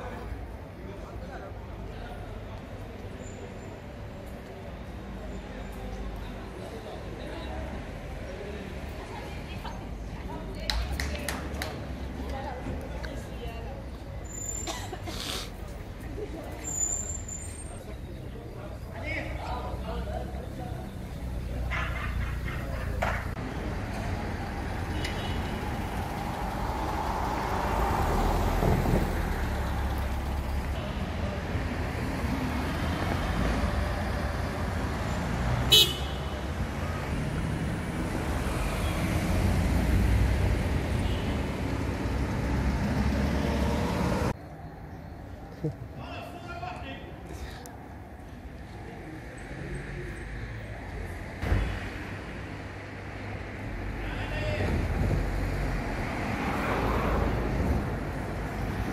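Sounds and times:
traffic rumble: 0:00.0 - 0:58.9
cars driving past: 0:13.9 - 0:44.4, 0:47.2 - 0:58.9.

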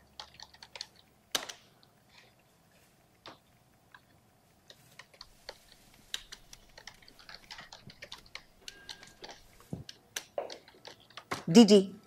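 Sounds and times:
typing on computer keyboard: 0:00.0 - 0:01.6, 0:05.0 - 0:11.4.

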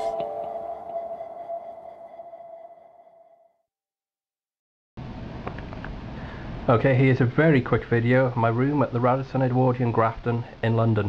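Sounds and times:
sustained electronic jingle tone: 0:00.0 - 0:03.6.

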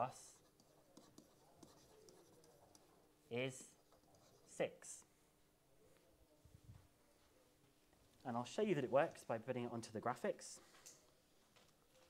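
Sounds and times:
stylus scratching on tablet: 0:00.1 - 0:04.8.

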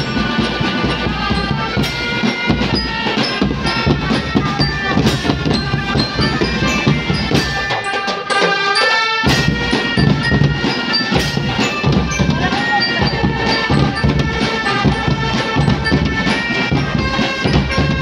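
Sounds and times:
high bright melody: 0:00.0 - 0:18.0
marching drums and cymbals: 0:00.0 - 0:18.0.

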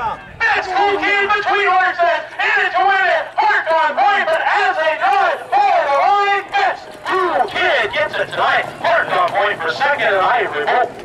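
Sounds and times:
man calling a race: 0:00.0 - 0:11.0.

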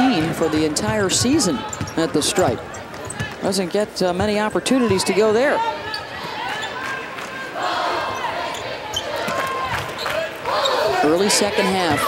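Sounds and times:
crowd calling and shouting: 0:00.0 - 0:12.0.

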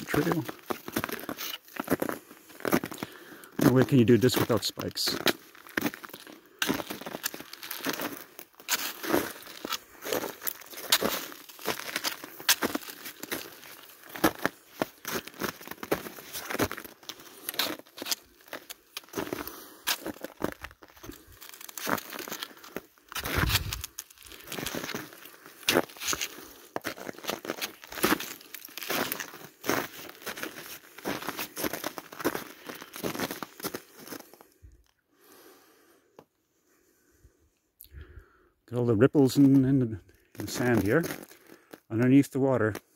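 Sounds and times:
footsteps crunching through snow: 0:00.0 - 0:34.6, 0:40.3 - 0:41.8.

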